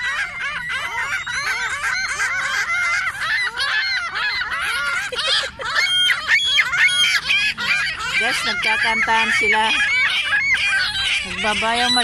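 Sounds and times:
flock of gulls calling: 0.0 - 12.0.

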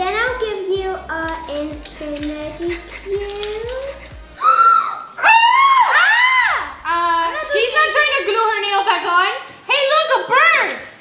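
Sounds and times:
high-pitched excited shrieks: 4.4 - 7.5.

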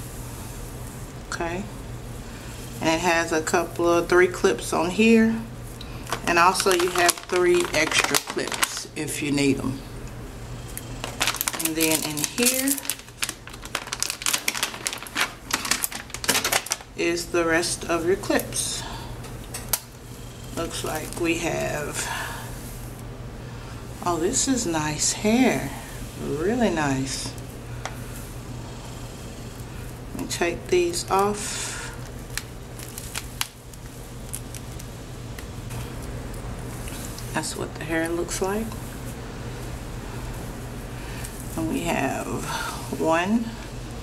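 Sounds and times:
steady low hum: 0.0 - 44.0
foil pouch crinkling: 6.1 - 9.0, 11.0 - 17.0, 32.0 - 35.5.

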